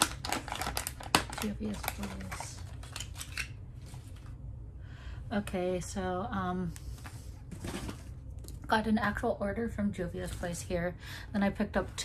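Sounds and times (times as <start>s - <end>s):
packaging clicks and rustles: 0.0s - 4.2s
low steady room hum: 0.0s - 12.0s.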